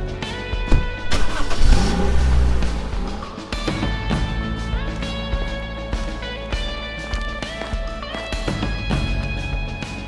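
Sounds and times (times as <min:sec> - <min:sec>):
car engine revving: 0:00.8 - 0:04.4.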